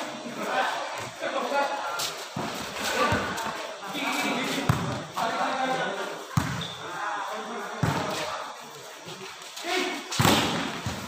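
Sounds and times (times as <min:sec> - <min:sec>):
volleyball smacks: 0:10.2 - 0:11.0.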